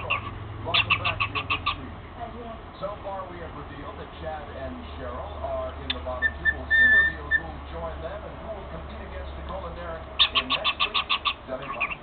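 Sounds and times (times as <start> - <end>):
cockatiel chirping: 0.0 - 1.8, 6.2 - 7.5, 10.2 - 12.0.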